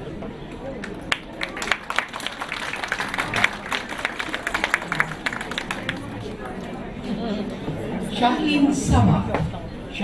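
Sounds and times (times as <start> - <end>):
audience applauding: 0.8 - 6.8.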